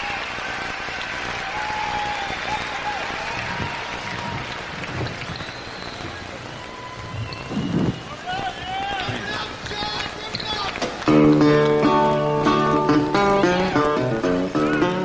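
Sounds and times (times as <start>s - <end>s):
crowd whistling: 0.0s - 11.2s
crowd applauding and cheering: 0.0s - 15.0s
resonator guitar playing: 11.0s - 15.0s.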